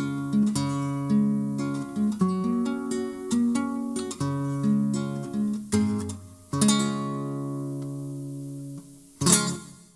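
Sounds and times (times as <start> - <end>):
acoustic guitar chord: 0.0 - 9.9.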